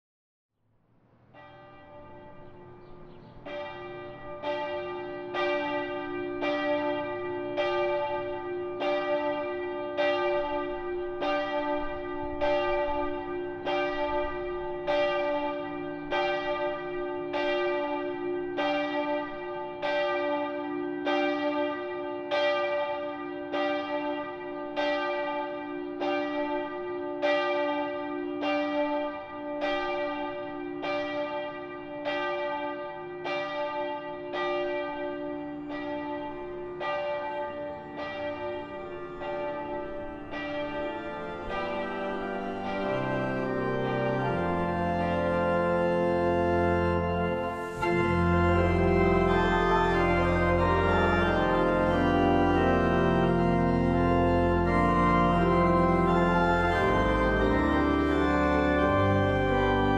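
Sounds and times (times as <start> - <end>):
church bells ringing: 1.2 - 59.9.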